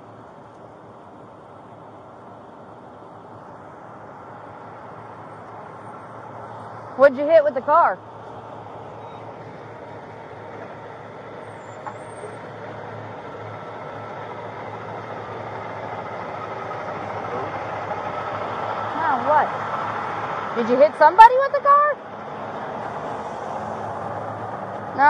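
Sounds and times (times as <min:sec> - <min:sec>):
road noise: 0:00.0 - 0:25.0
vehicle engine hum: 0:00.0 - 0:25.0.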